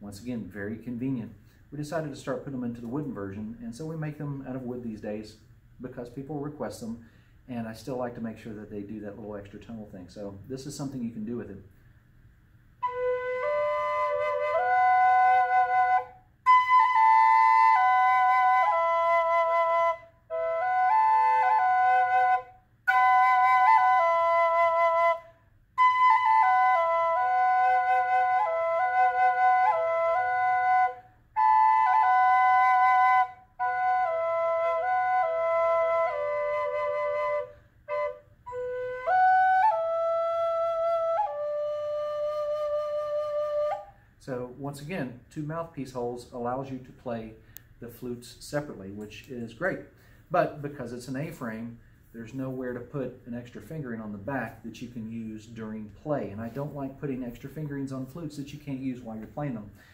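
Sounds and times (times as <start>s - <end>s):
drone flute melody: 12.8s - 44.0s.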